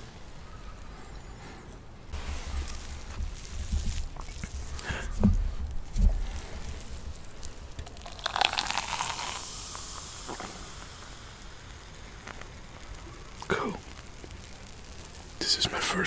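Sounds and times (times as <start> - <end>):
soda fizzing and crackling: 2.1 - 16.0
soda pouring into glass: 6.2 - 15.5.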